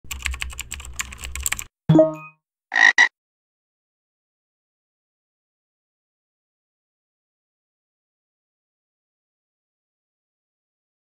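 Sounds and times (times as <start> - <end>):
computer keyboard typing: 0.1 - 1.7
frog croak: 2.7 - 3.1.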